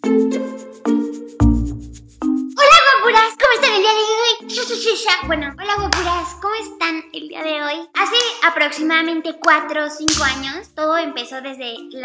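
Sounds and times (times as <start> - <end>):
woman's excited voice: 2.6 - 3.7
sharp hand clap: 5.9 - 6.4, 8.2 - 8.4, 9.5 - 10.6.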